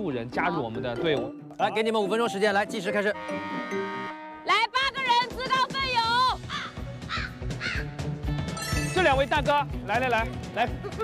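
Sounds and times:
background music: 0:00.0 - 0:11.0
crow cawing sound effect: 0:06.5 - 0:07.9.

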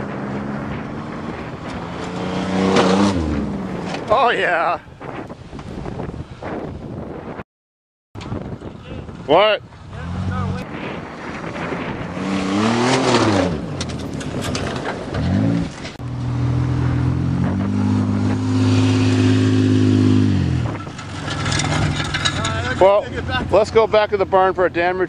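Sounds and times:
minivan engine revving hard: 0:00.2 - 0:03.6, 0:12.0 - 0:13.6, 0:16.2 - 0:20.8.

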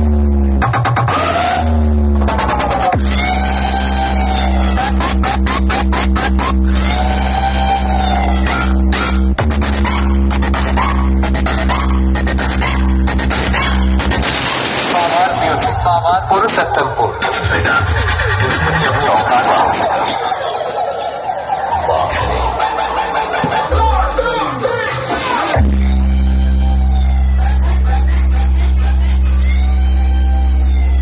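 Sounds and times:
deep steady bass tone: 0:00.0 - 0:14.4, 0:25.6 - 0:31.0
people's voices: 0:02.2 - 0:13.9, 0:14.8 - 0:31.0
loud rushing noise: 0:14.0 - 0:15.9.

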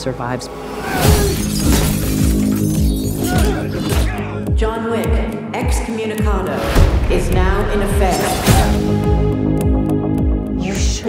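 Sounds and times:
deep falling bass hits: 0:06.7 - 0:09.4.

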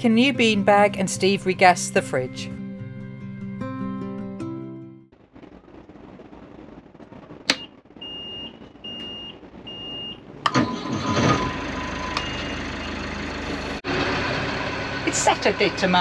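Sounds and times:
short beeps: 0:07.6 - 0:10.9, 0:11.8 - 0:13.0
diesel engine cranking and running: 0:10.5 - 0:16.0.

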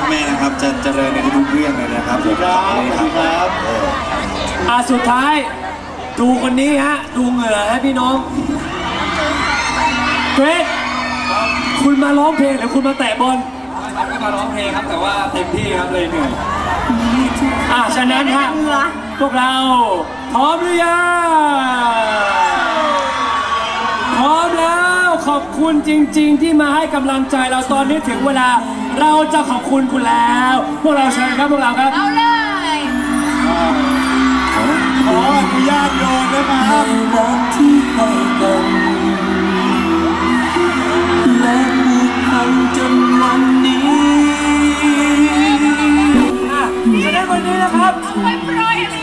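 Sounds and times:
crowd cheering: 0:00.0 - 0:49.0
pop music over sound system: 0:00.0 - 0:49.0.

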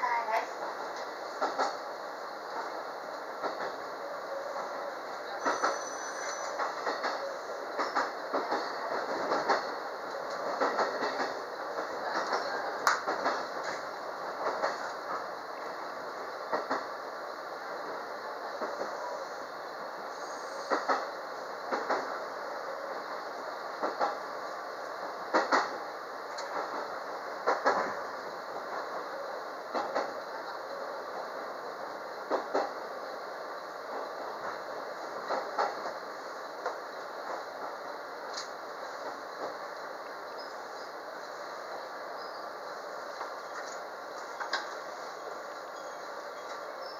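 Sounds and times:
train running rumble: 0:00.0 - 0:46.9
train wheels clicking over rail joints: 0:00.9 - 0:01.8, 0:03.4 - 0:03.8, 0:05.3 - 0:15.3, 0:16.5 - 0:16.9, 0:20.6 - 0:21.1, 0:21.7 - 0:22.2, 0:23.8 - 0:24.3, 0:25.2 - 0:28.1, 0:29.7 - 0:30.2, 0:32.2 - 0:32.8, 0:33.9 - 0:36.0, 0:43.1 - 0:45.1.

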